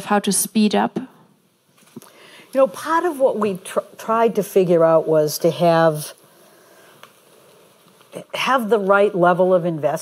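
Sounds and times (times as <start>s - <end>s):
light steady hiss: 0.0s - 10.0s.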